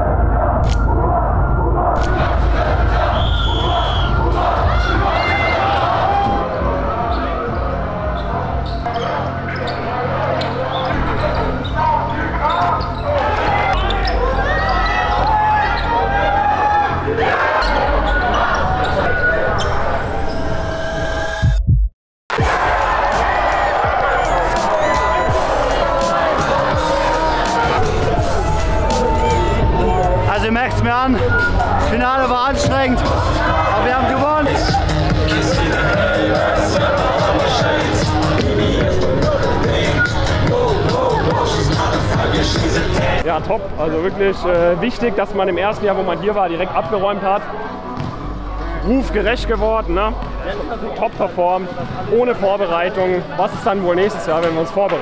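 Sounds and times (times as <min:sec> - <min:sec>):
voices of players and spectators: 0:00.0 - 0:20.8, 0:22.3 - 0:55.0
music: 0:00.0 - 0:55.0.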